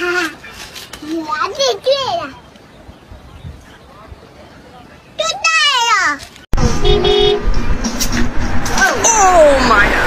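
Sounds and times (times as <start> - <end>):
traffic noise: 0.0 - 10.0
car horn honking: 6.6 - 7.6.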